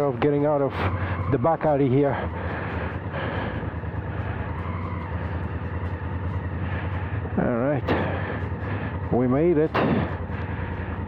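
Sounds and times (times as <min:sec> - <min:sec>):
motorcycle engine running low speed: 0:00.0 - 0:11.0.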